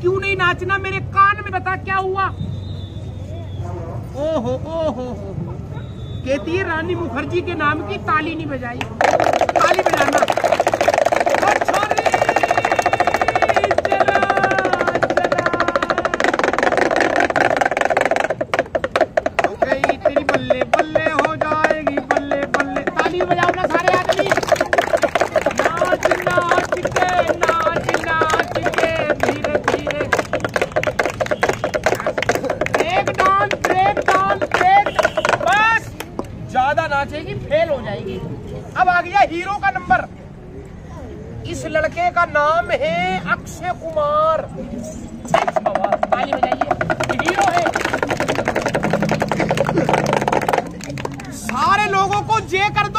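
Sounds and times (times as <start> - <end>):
sharp taps: 8.8 - 36.4, 45.3 - 52.2
small hand drum beaten fast: 9.0 - 35.9, 45.3 - 52.2.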